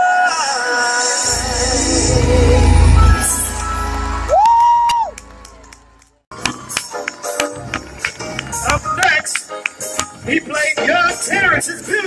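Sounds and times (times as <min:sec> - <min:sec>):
song music: 0:00.6 - 0:12.0
audience cheering: 0:02.0 - 0:08.9
person shouting woo: 0:04.3 - 0:05.2.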